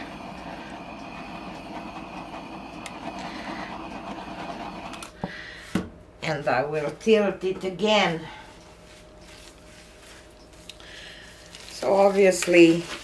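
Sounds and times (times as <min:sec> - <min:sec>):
torch flame hissing: 0:00.0 - 0:05.2.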